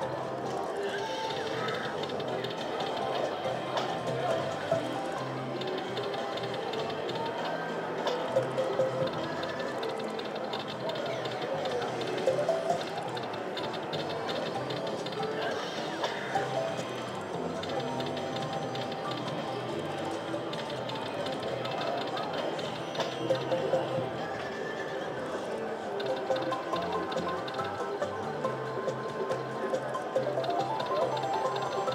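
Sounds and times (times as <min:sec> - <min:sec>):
slot machine reels spinning: 0:01.3 - 0:24.3, 0:25.9 - 0:31.9
slot machine bonus music: 0:08.1 - 0:15.1, 0:16.3 - 0:24.2, 0:26.0 - 0:31.9.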